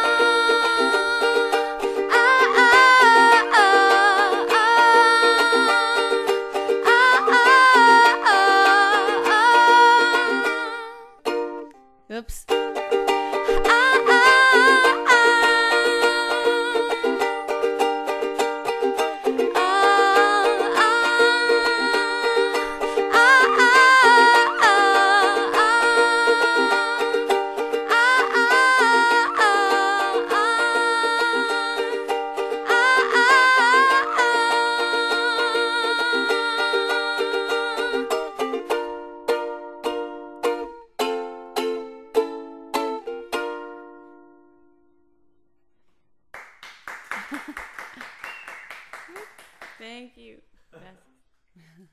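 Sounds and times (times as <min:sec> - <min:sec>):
woman singing: 0:00.0 - 0:11.2, 0:12.1 - 0:17.5, 0:19.2 - 0:38.6
strummed ukulele: 0:00.0 - 0:45.5, 0:46.4 - 0:50.0.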